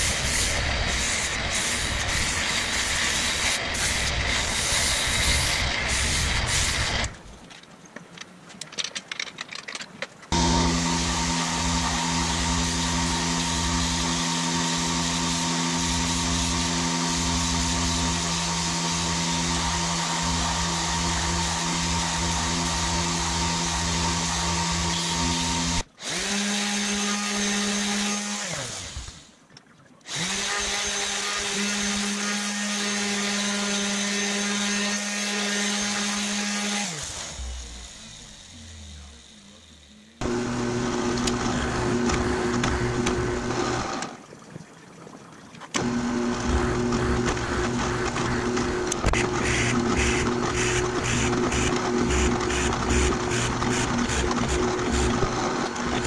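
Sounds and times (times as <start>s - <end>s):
orbital sander running: 10.3s - 29.2s, 30.1s - 44.0s, 45.8s - 56.0s
belt sander running: 10.3s - 29.3s, 30.1s - 44.2s, 45.8s - 56.0s.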